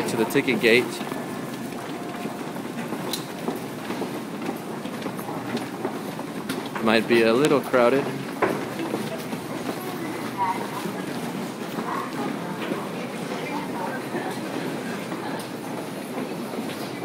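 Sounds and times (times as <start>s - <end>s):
footsteps of passengers: 0.0s - 17.0s
murmur of crowd: 0.0s - 17.0s
train rumbling past platform: 0.0s - 17.0s.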